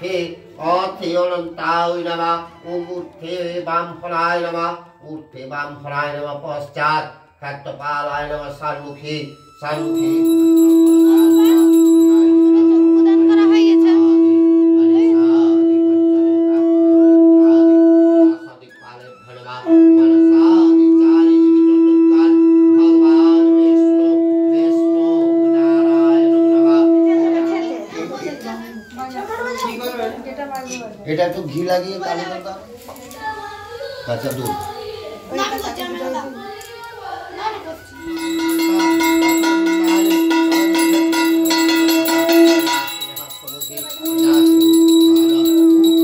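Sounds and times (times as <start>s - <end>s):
long steady held tone: 8.7s - 13.6s, 37.6s - 46.0s
conch shell blown: 9.0s - 29.9s, 37.7s - 46.0s
small brass hand bell ringing: 9.4s - 12.7s, 38.0s - 46.0s
faint voices: 32.5s - 46.0s.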